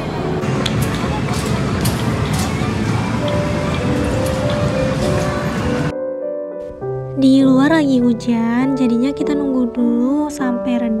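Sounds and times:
crowd chatter: 0:00.0 - 0:05.9
game machine music: 0:02.7 - 0:05.9.

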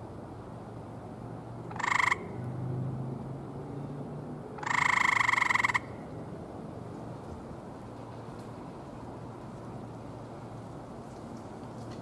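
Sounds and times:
tree frog trilling: 0:01.7 - 0:02.4, 0:04.6 - 0:06.0.

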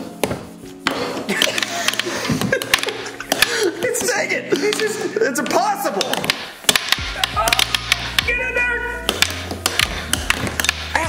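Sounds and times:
air hockey puck clacking: 0:00.2 - 0:08.4, 0:09.0 - 0:11.0.

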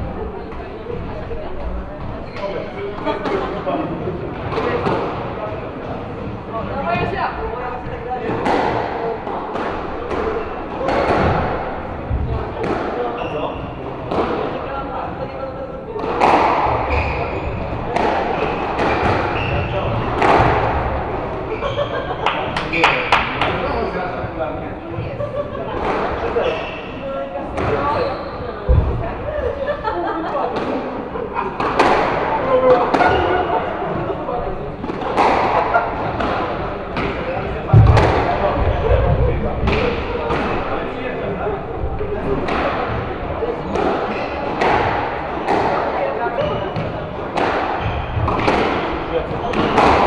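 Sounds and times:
squash ball hits: 0:08.2 - 0:13.1, 0:14.0 - 0:14.6, 0:16.0 - 0:21.1, 0:31.6 - 0:33.5, 0:34.8 - 0:40.8, 0:42.3 - 0:50.0.

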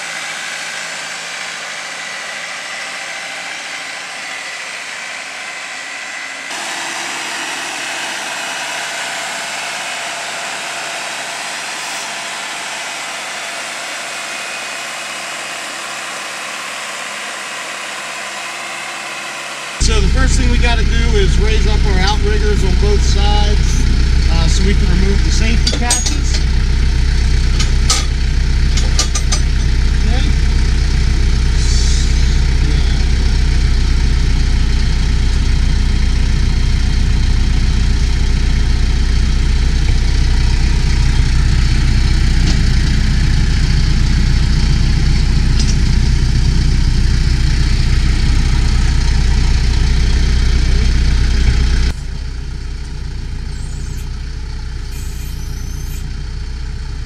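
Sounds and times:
tractor diesel engine idling: 0:00.0 - 0:57.0
sharp metallic clanks: 0:25.3 - 0:26.7, 0:27.5 - 0:29.8.

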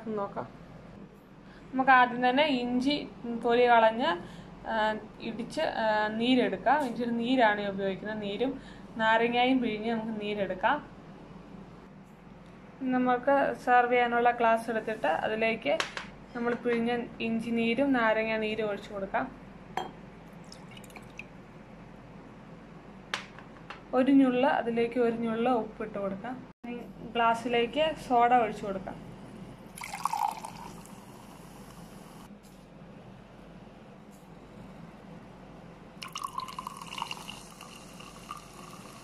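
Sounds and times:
glass tapping: 0:19.8 - 0:20.0
liquid dripping and trickling: 0:20.3 - 0:21.4, 0:29.8 - 0:31.0
soda pouring into a glass: 0:20.4 - 0:21.3, 0:29.7 - 0:32.0, 0:36.0 - 0:39.0.

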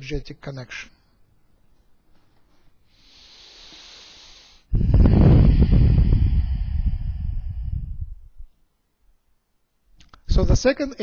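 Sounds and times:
wind buffeting microphone: 0:04.7 - 0:08.5.

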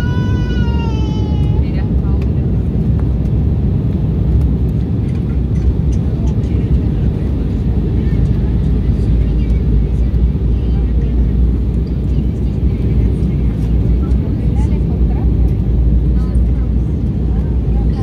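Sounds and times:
airliner turbofan engines humming: 0:00.0 - 0:18.0.

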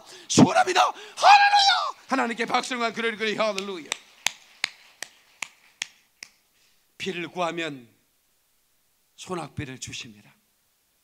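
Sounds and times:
hand claps: 0:03.4 - 0:06.4.

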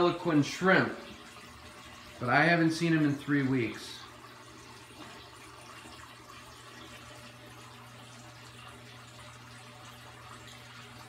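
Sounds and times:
aquarium water trickling: 0:00.0 - 0:11.0.

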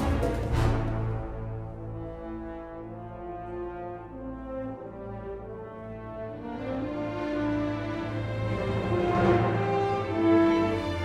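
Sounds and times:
full orchestra passage: 0:00.0 - 0:11.0
low brass chords: 0:00.0 - 0:11.0.

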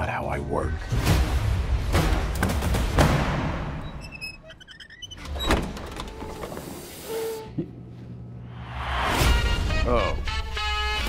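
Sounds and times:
elevator doors sliding open: 0:03.8 - 0:07.4.

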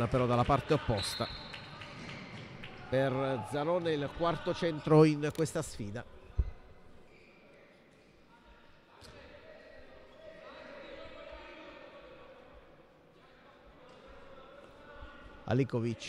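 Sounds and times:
distant voices echoing in hall: 0:00.0 - 0:16.0.

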